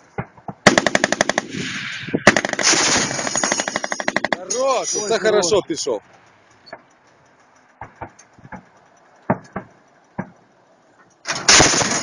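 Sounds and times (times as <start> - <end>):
autocannon firing rapid bursts: 0.6 - 1.6, 2.2 - 4.6, 11.3 - 12.0
man's voice: 4.3 - 6.0.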